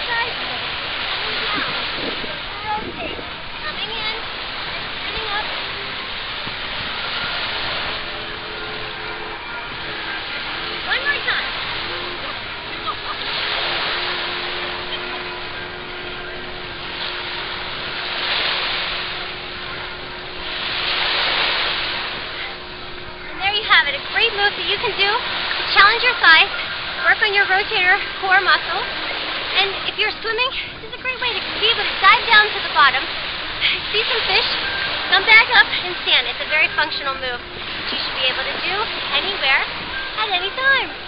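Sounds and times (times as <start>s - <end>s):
small waves on sandy beach: 0.0s - 41.0s
voices of bathers: 0.0s - 41.0s.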